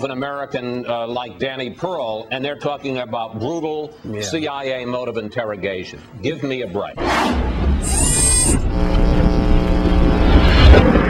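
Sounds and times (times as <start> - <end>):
low rumbling sound effect: 7.0 - 11.0
steady held tone: 7.8 - 10.3.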